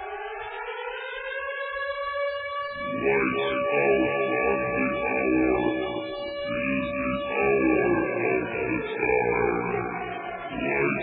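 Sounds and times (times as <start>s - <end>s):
rising siren-like tone: 2.7s - 11.0s.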